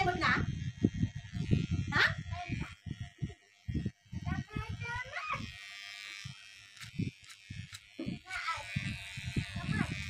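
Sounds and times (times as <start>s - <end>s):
electric hair clippers buzzing: 0.0s - 10.0s.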